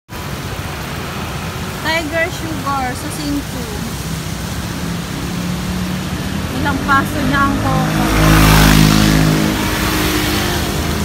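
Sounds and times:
tyres hissing on wet road: 0:00.1 - 0:11.0
voice: 0:01.8 - 0:04.0, 0:06.5 - 0:08.3.

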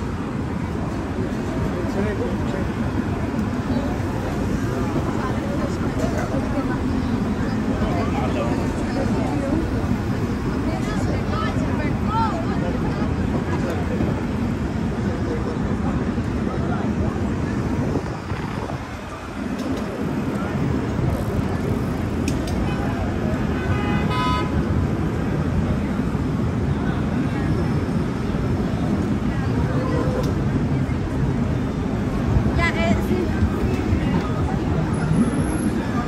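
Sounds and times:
traffic rumble: 0:00.0 - 0:36.0
people talking: 0:01.5 - 0:23.4, 0:25.7 - 0:36.0
car horn toot: 0:23.6 - 0:24.5.

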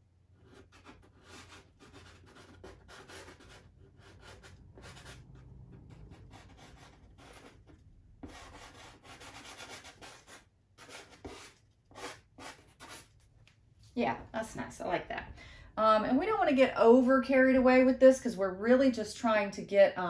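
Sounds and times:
pastel scratching on paper: 0:00.4 - 0:13.1.

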